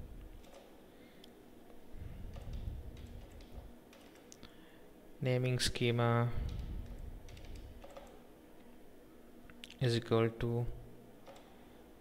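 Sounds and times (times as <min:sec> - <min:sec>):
faint keyboard keystrokes: 0:02.3 - 0:04.4, 0:06.4 - 0:08.2.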